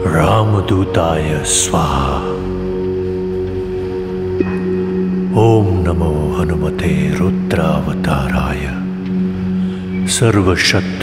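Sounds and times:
drone of low tones: 0.0s - 11.0s
faint high ringing tone: 4.0s - 8.6s.

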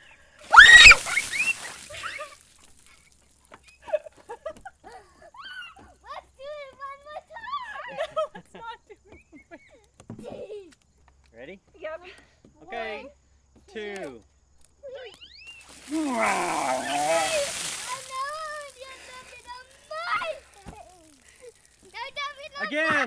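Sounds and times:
ice water splashing: 0.4s - 3.5s, 15.6s - 22.8s
person shrieking: 0.5s - 1.3s, 15.8s - 18.1s
high squeals: 0.5s - 2.4s.

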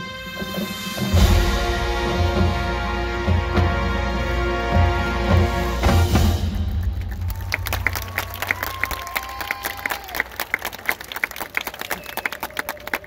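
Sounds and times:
audience applauding: 6.7s - 13.0s.

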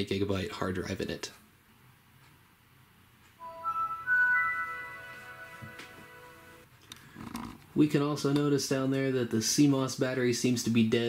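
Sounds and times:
rising startup chime: 3.4s - 6.7s.

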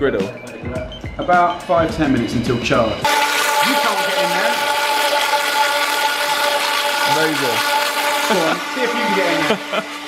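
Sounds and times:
blender motor whine: 3.0s - 10.0s
thick sauce churning in blender: 3.1s - 10.0s.

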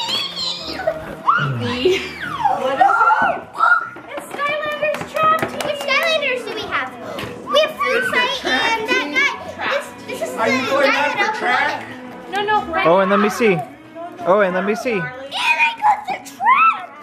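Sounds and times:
children squealing and chattering: 0.0s - 4.7s, 6.2s - 12.0s, 12.8s - 17.0s.

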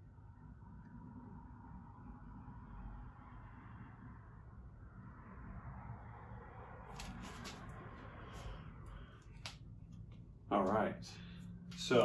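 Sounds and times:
low room rumble: 0.0s - 12.0s.

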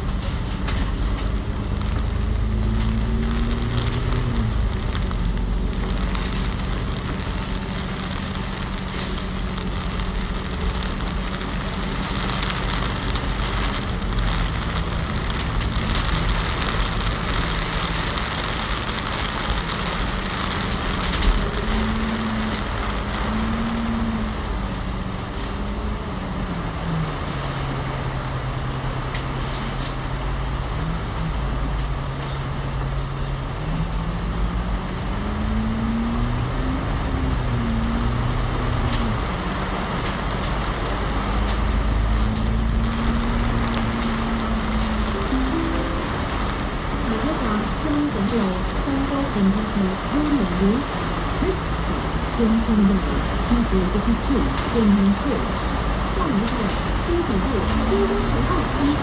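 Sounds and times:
bus diesel engine hum: 0.0s - 59.0s
tyre hiss on wet road: 1.8s - 23.9s.

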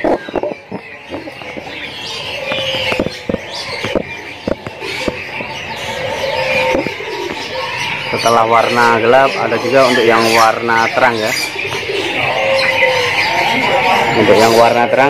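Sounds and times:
caged songbirds chirping: 0.0s - 15.0s.

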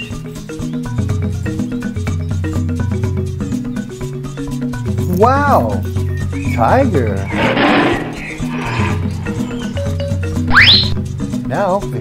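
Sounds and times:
tiger roaring: 7.2s - 9.7s
rising whistle: 10.5s - 11.0s.

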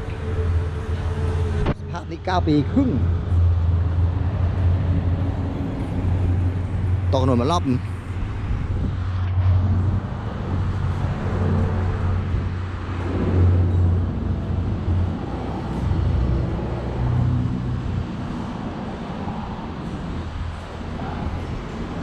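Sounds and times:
road traffic rumble: 0.0s - 22.0s.

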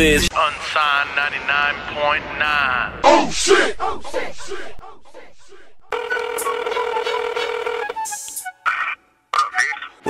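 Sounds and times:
telephone dial tone: 6.0s - 8.0s.

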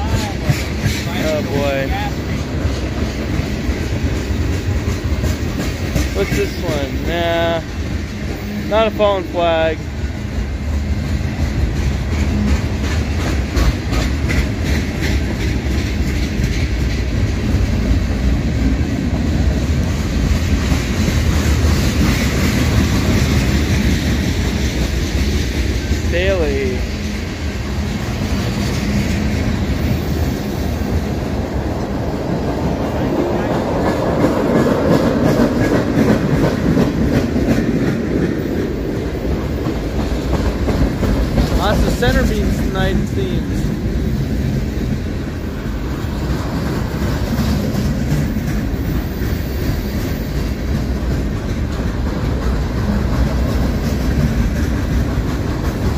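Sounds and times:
rumble of train wheels on rails: 0.0s - 55.9s.

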